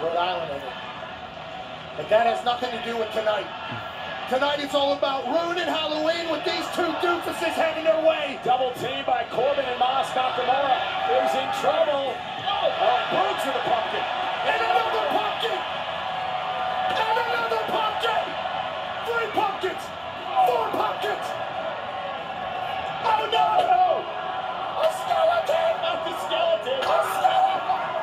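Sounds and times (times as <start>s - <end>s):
arena crowd noise: 0.0s - 28.0s
shouting voices: 2.6s - 21.9s, 22.6s - 28.0s.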